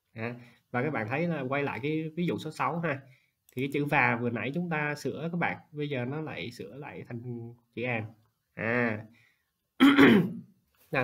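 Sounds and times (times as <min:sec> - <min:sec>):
man clearing his throat: 0:09.8 - 0:10.5.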